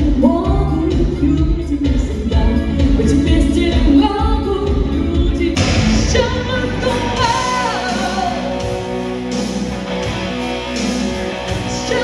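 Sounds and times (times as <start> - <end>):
woman singing pop song: 0.0 - 8.8, 11.6 - 12.0
backing track with steady beat: 0.0 - 12.0.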